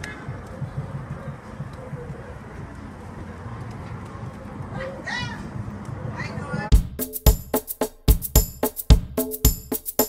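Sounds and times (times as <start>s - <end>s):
faint voices: 0.0s - 6.7s.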